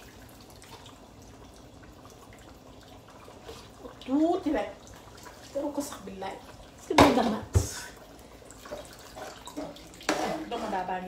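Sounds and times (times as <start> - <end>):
sauce simmering and bubbling: 0.0 - 6.9, 7.7 - 11.0
woman talking: 4.0 - 4.8, 5.5 - 8.0, 9.6 - 11.0.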